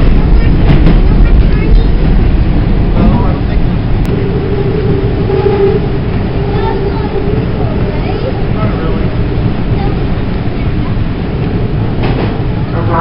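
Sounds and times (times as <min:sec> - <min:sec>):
subway train rumbling: 0:00.0 - 0:13.0
train motor whine: 0:04.0 - 0:13.0.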